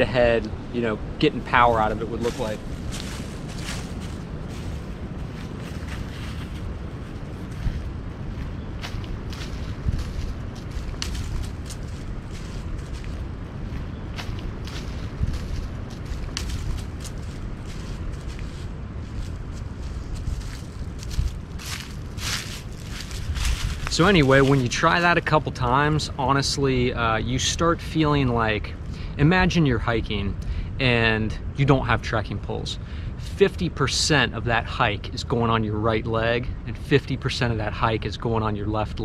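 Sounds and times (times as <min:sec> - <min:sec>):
wind rumbling on microphone: 0:00.0 - 0:39.0
footsteps on dry leaves: 0:01.8 - 0:25.4.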